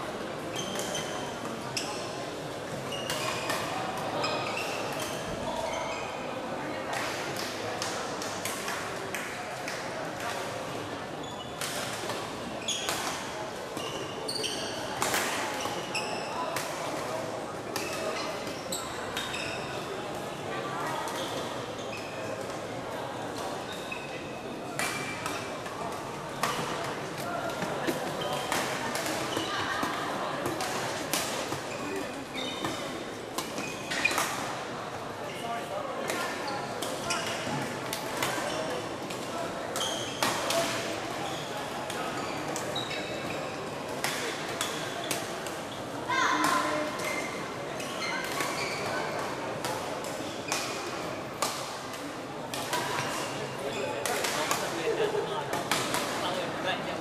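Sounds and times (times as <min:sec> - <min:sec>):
sneaker squeaks on court floor: 0:00.5 - 0:02.0, 0:02.9 - 0:06.2, 0:11.2 - 0:11.7, 0:12.6 - 0:13.1, 0:13.8 - 0:14.9, 0:15.5 - 0:16.4, 0:17.8 - 0:19.9, 0:29.2 - 0:29.6, 0:31.6 - 0:34.5, 0:36.4 - 0:37.6, 0:39.8 - 0:40.6, 0:41.2 - 0:43.6, 0:46.8 - 0:49.2
babble of voices echoing: 0:34.2 - 0:57.0.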